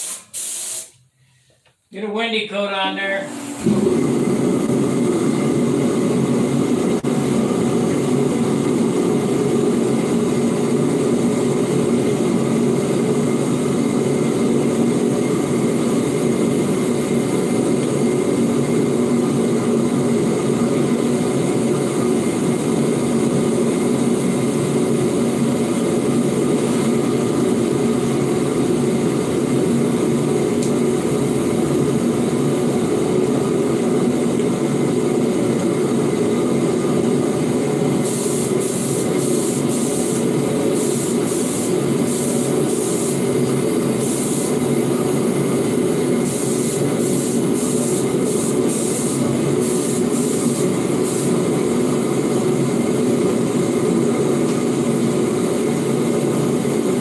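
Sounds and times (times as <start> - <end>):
ventilation fan whirring: 0.0 - 57.0.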